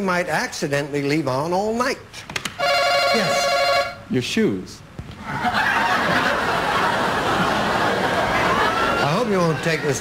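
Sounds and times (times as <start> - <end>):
studio audience laughing: 5.2 - 10.0.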